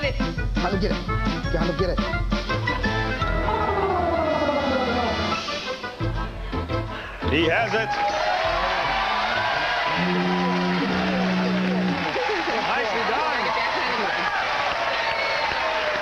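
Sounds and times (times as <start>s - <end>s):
audience applauding and cheering: 7.6s - 16.0s
held musical note: 9.9s - 12.1s.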